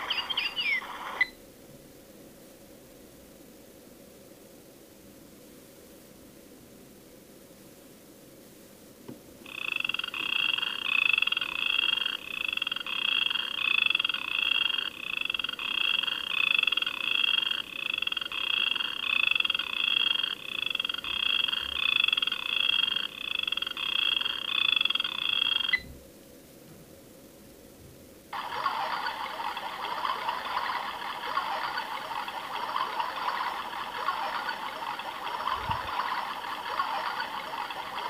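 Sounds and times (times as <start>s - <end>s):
digital alarm clock beeping: 9.5s - 25.9s, 28.6s - 38.0s.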